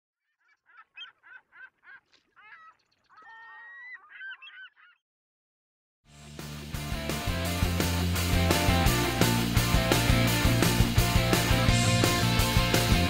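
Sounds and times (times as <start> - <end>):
birds calling: 0.3 - 5.0.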